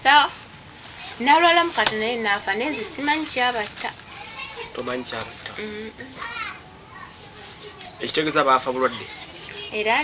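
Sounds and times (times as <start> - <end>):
child calling: 4.0 - 4.8, 5.6 - 8.0.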